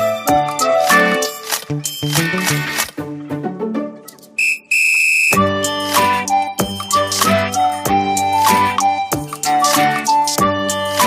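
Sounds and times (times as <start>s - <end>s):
background music: 0.0s - 11.0s
whistle blasts: 4.4s - 5.5s.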